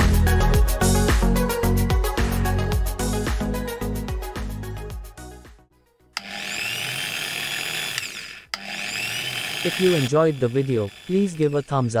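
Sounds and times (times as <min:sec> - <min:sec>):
electric drill whining: 0:06.2 - 0:12.0.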